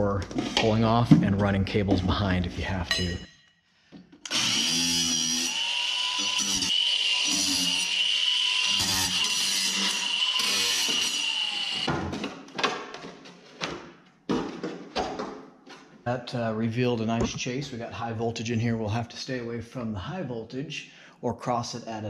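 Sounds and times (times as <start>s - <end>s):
cordless drill whining: 4.2s - 11.9s.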